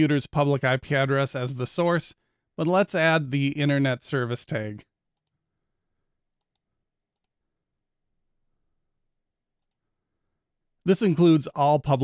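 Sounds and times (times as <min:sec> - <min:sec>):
computer mouse clicks: 0:05.2 - 0:05.4, 0:06.4 - 0:07.4, 0:09.6 - 0:09.8.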